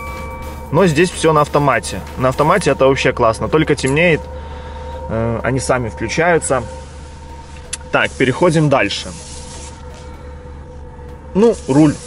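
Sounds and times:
faint steady tone: 0.0s - 12.0s
low car cabin hum: 0.0s - 12.0s.

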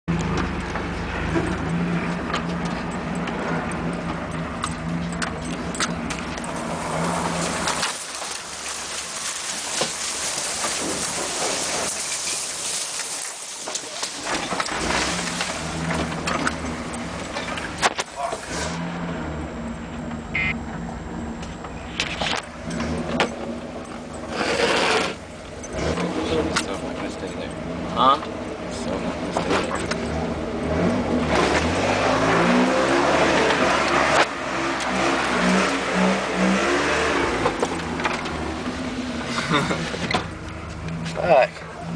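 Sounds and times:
road noise: 0.0s - 41.9s
knocks and rattles over bumps: 0.1s - 18.5s, 21.5s - 31.8s, 37.3s - 41.9s
truck engine running: 0.1s - 41.9s.

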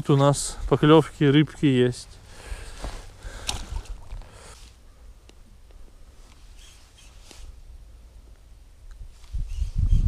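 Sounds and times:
fish splashing into river: 3.3s - 4.3s
wind rumbling on microphone: 8.9s - 10.0s.

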